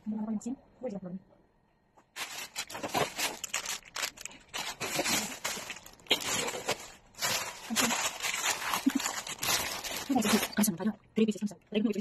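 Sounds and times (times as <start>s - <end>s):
plastic bags rustling: 2.1s - 10.8s.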